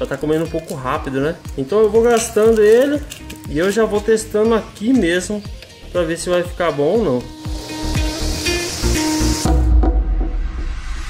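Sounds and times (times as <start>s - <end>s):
background music: 0.0s - 11.0s
gritty sanding hiss: 7.2s - 9.5s
drill press motor hum: 7.3s - 9.5s.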